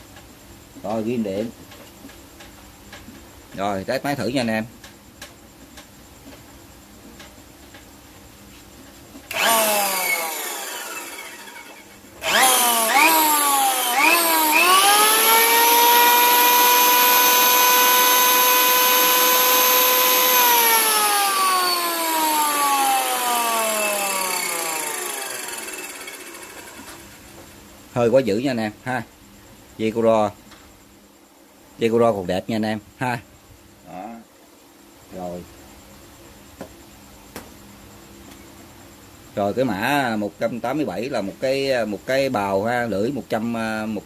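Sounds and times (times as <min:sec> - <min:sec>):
electric hand planer whining: 0:09.3 - 0:27.2.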